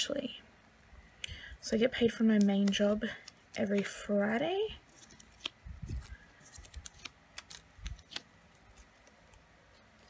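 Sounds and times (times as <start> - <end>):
paper rustling: 4.8 - 10.0.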